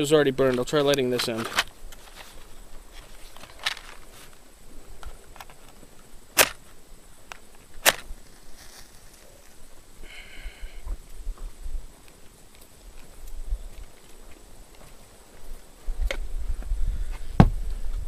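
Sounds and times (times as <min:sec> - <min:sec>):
wind rumble on microphone: 0:10.8 - 0:12.0, 0:15.4 - 0:18.0.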